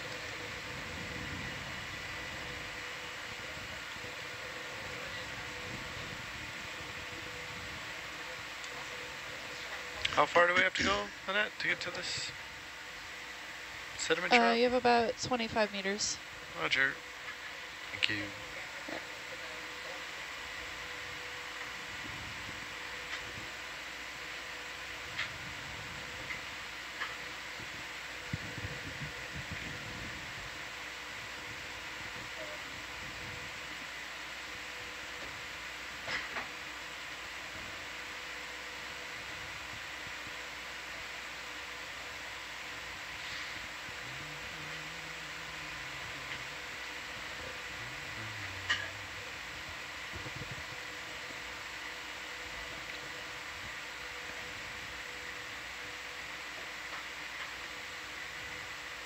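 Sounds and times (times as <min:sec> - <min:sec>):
electrical hum and hiss: 0:00.0 - 0:59.0.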